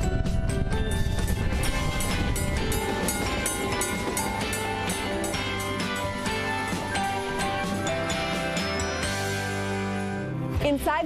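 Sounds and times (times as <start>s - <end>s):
trolley car running on rails: 0.0s - 9.8s
background music: 0.0s - 11.0s.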